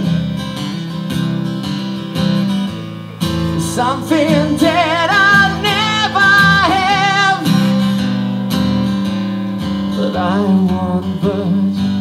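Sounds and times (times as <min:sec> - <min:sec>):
strummed acoustic guitar: 0:00.0 - 0:12.0
man singing with vibrato: 0:03.4 - 0:08.1, 0:09.9 - 0:12.0.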